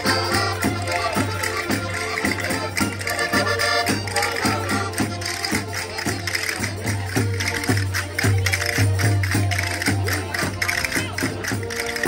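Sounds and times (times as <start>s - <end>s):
accordions through a pa: 0.0s - 12.0s
hand clapping: 0.0s - 12.0s.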